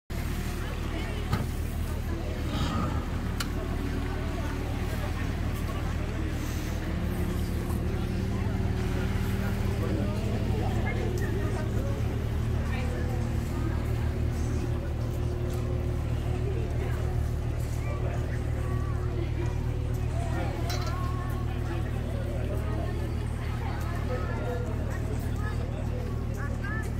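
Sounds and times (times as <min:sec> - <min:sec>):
boat engine idling: 0:00.1 - 0:26.9
background voices: 0:00.7 - 0:17.4.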